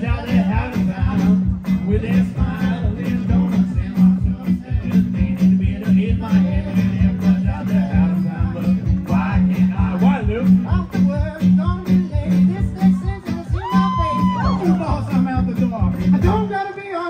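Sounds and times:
low pulsing beat: 0.0 - 16.5
acoustic guitar playing: 0.0 - 17.0.

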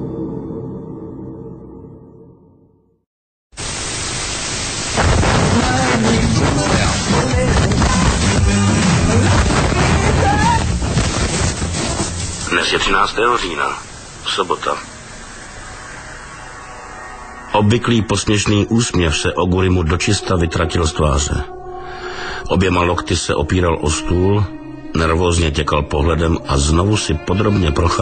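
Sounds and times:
television static hiss: 3.6 - 16.3
steady background hiss: 10.9 - 19.1.

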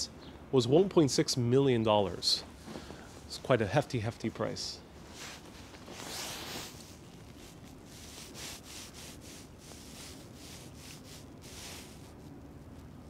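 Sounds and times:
clothes rustling on microphone: 2.4 - 3.4, 5.0 - 13.0.

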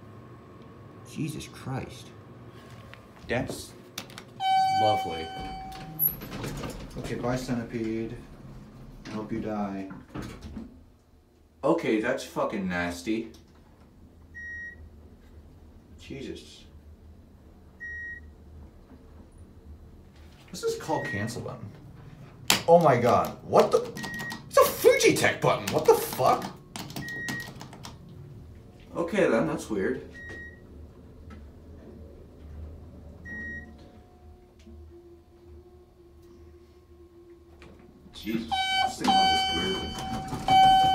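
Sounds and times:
low steady hum: 0.0 - 40.9
short electronic beep: 4.4 - 6.0, 38.3 - 40.9
elevator beep: 4.4 - 6.8, 14.3 - 14.9, 17.8 - 18.3, 20.8 - 21.5, 24.0 - 24.5, 27.0 - 27.6, 30.1 - 30.8, 33.2 - 34.3, 38.2 - 40.9.

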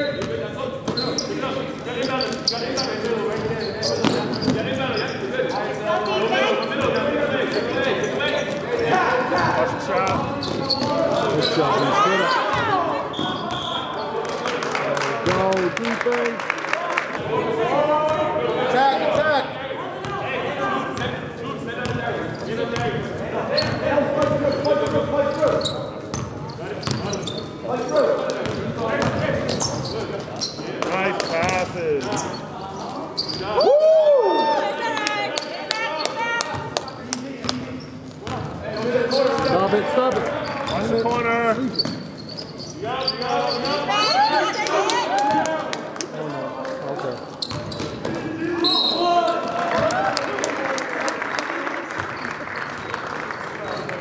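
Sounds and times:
basketball bouncing on court: 10.0 - 11.3, 23.6 - 27.4, 28.3 - 30.0, 47.4 - 48.3.

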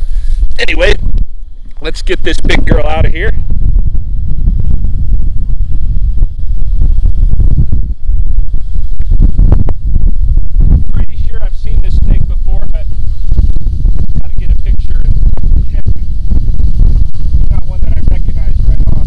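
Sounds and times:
heavy low rumble: 0.0 - 19.0
wind buffeting microphone: 0.0 - 19.0.

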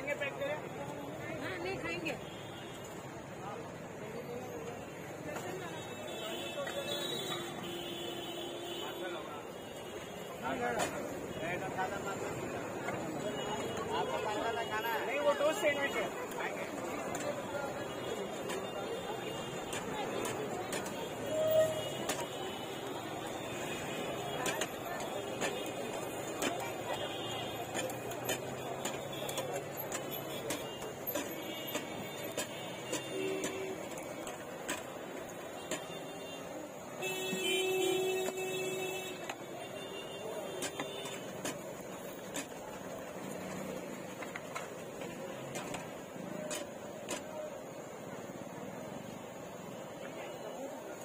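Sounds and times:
indistinct chatter: 0.0 - 51.0
traffic noise: 0.0 - 51.0.

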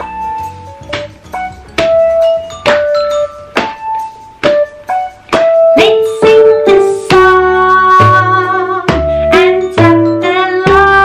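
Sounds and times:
keyboard melody: 0.0 - 11.0
sharp knocks: 0.9 - 3.0, 3.6 - 5.6.

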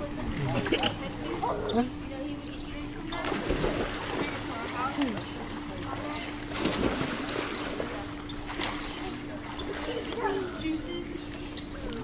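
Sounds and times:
pool water sloshing and splashing: 0.0 - 12.0
steady low hum: 0.0 - 12.0.

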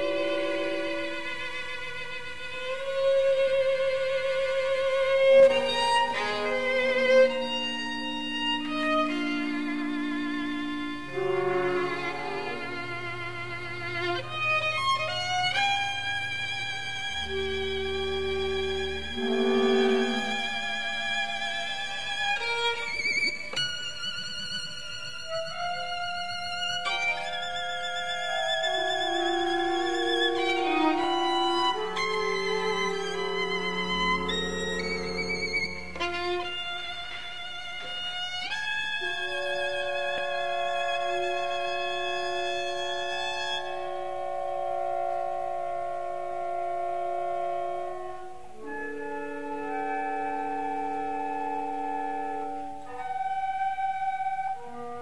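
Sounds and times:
ensemble sustained chords: 0.0 - 55.0
violin high notes with vibrato: 0.0 - 55.0.

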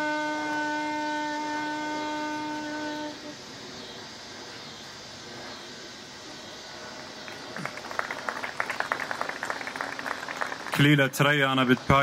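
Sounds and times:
saxophone long note: 0.0 - 3.4.

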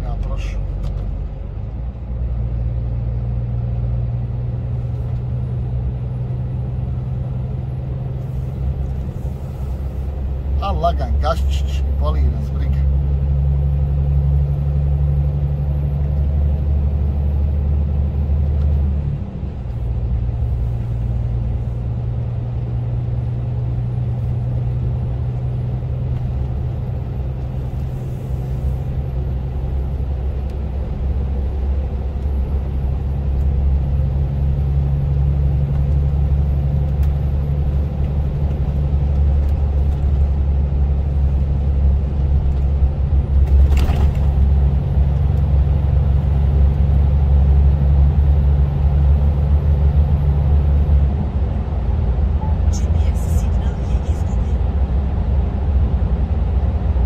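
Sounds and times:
lorry engine and road noise: 0.0 - 57.0.

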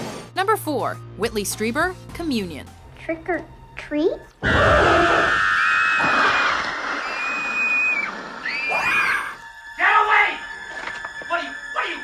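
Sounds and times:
music: 0.0 - 4.4, 8.4 - 12.0
child screaming: 4.4 - 9.4.

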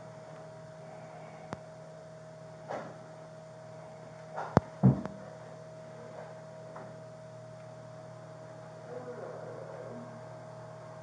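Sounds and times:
steady electrical hum: 0.0 - 11.0
dull thump: 4.8 - 5.1.

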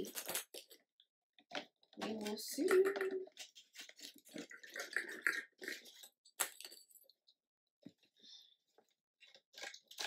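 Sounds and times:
plastic balls clicking in tube: 1.5 - 3.5, 4.3 - 6.9.

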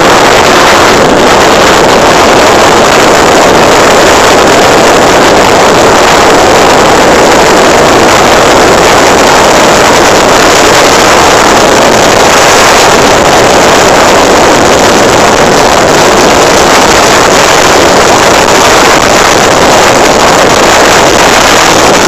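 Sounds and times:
motorcycle engine drone: 0.0 - 22.0
wind rushing over microphone: 0.0 - 22.0.

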